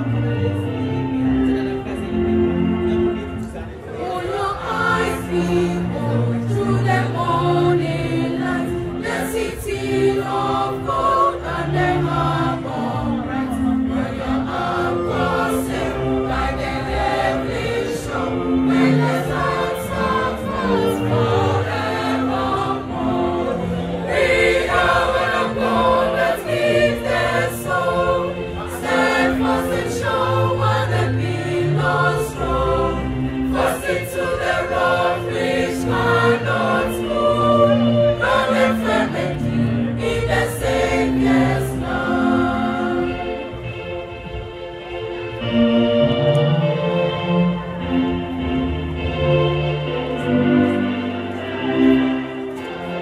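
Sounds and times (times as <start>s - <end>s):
mixed choir singing in harmony: 0.0s - 53.0s.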